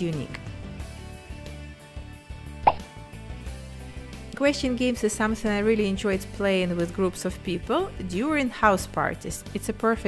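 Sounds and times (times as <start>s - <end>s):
background music with low tones: 0.0s - 10.0s
short pop: 2.7s - 2.9s.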